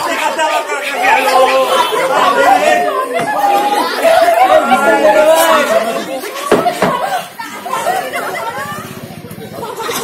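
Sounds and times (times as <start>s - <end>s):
people talking in a hall: 0.0s - 10.0s.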